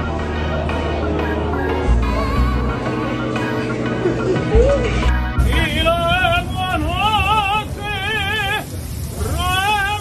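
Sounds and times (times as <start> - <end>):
operatic tenor singing: 5.4 - 10.0.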